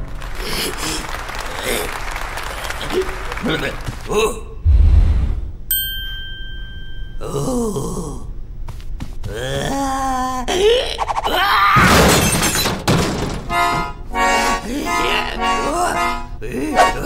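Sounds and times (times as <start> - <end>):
thump: 4.7 - 5.6
high ringing note: 5.7 - 7.5
cartoon groaning whining voice: 9.3 - 11.8.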